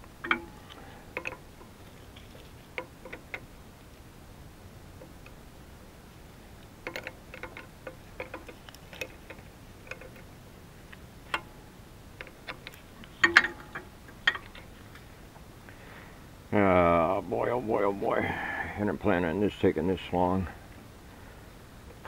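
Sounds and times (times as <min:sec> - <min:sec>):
metallic clicks of hose fittings: 0:00.2 - 0:03.5, 0:06.6 - 0:10.3, 0:10.9 - 0:11.6, 0:12.2 - 0:15.1.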